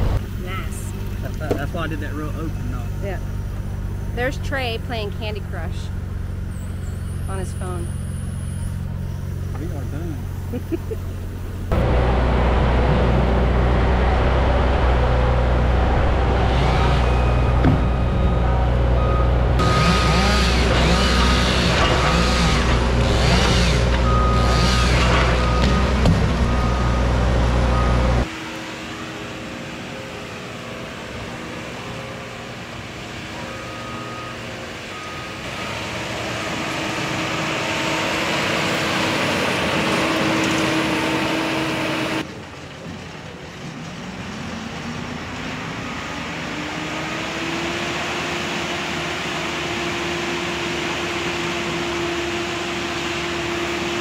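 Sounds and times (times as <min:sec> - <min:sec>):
heavy machine engine: 0:00.0 - 0:54.0
stump grinder grinding wood: 0:11.2 - 0:28.5, 0:35.4 - 0:42.2.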